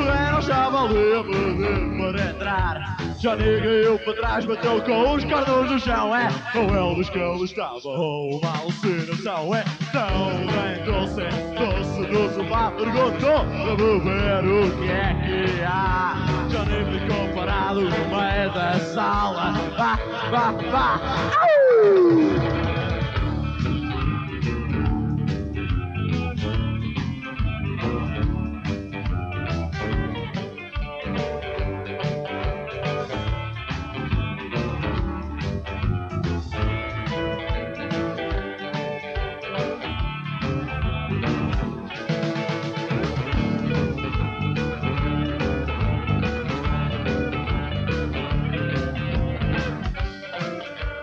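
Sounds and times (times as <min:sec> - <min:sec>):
bass guitar: 0:00.0 - 0:07.6, 0:08.8 - 0:51.0
rock and roll band playing: 0:00.0 - 0:51.0
guitar note sliding down: 0:21.4 - 0:22.9.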